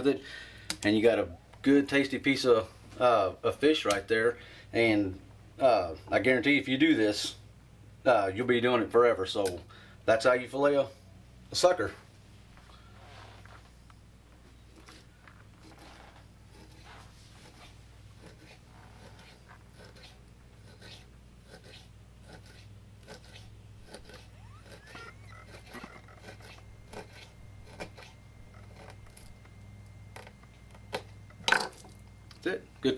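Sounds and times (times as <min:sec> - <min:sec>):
steady low hum: 0:00.0 - 0:32.9
knife cutting on cutting board: 0:15.6 - 0:29.3.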